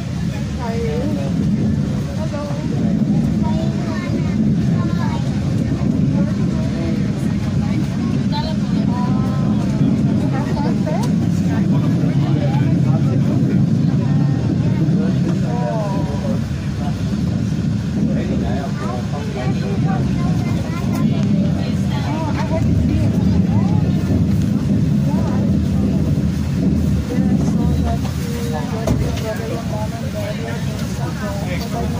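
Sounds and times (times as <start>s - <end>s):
faint voices: 0.0s - 31.9s
train rumble inside carriage: 0.0s - 31.9s.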